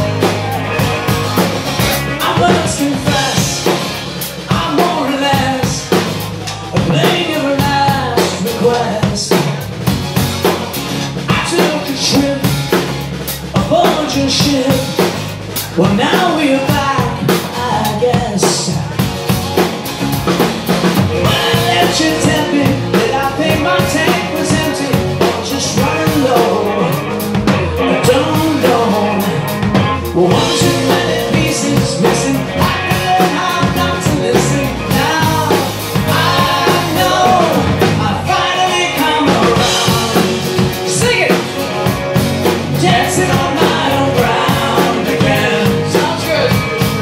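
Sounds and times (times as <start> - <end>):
man singing lead: 0.0 - 19.7, 20.4 - 47.0
drum kit beat: 0.0 - 47.0
electric bass: 0.0 - 47.0
melodic line: 21.1 - 47.0.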